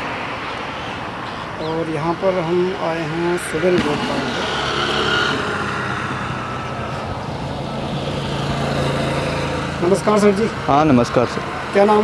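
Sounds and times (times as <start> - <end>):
engine humming: 1.0 - 12.0.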